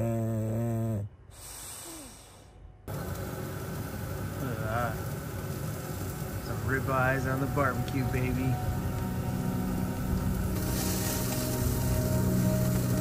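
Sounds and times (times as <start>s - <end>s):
dog snoring: 0.0s - 2.4s.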